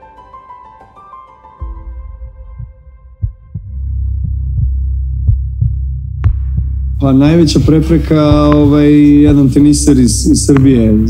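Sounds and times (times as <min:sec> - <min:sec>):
soft heartbeat-like double beat: 0:01.6 - 0:11.0
low droning bass: 0:01.7 - 0:11.0.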